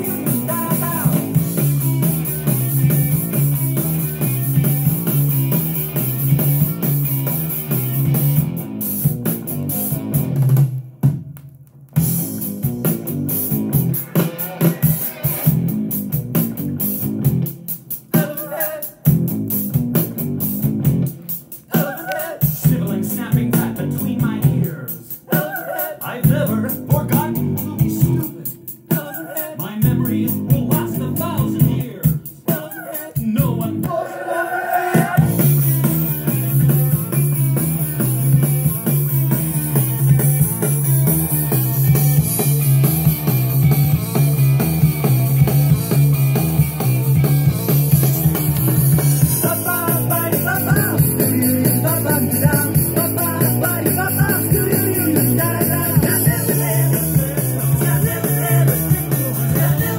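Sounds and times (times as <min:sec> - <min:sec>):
rock song from vinyl record: 0:00.0 - 0:59.9.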